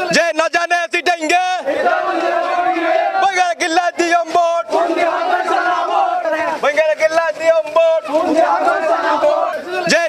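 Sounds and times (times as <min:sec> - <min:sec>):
men chanting: 0:01.5 - 0:06.7, 0:07.7 - 0:10.0.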